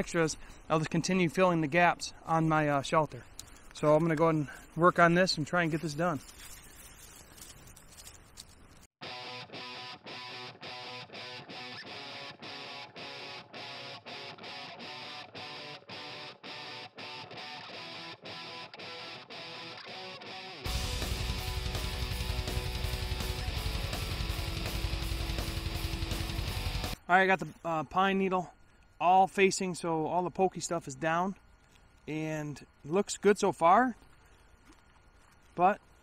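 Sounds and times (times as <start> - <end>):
guitar-led background music: 9.0 - 27.0.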